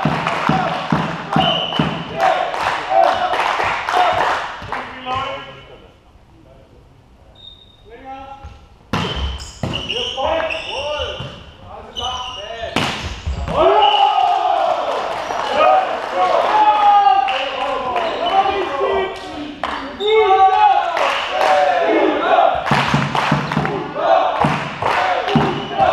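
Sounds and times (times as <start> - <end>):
volleyball being struck: 0.0 - 2.2, 8.9 - 9.9, 12.8 - 13.6, 22.7 - 23.8, 24.4 - 25.9
players shouting: 0.0 - 4.5, 13.5 - 25.9.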